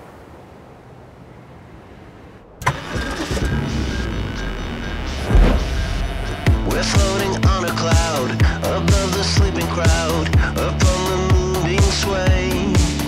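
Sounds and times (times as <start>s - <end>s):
car engine starting and running: 0.5s - 9.9s
music: 2.6s - 13.0s.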